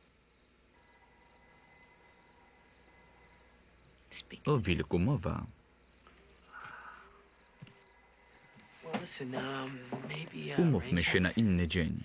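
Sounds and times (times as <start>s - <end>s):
thin steady high tones: 0.0s - 12.0s.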